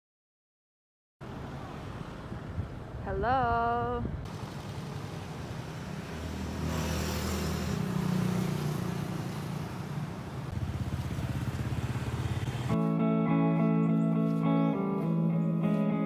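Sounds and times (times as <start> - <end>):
vehicle engine hum: 1.2 - 15.9
road noise: 1.2 - 16.0
guitar music: 12.7 - 16.0.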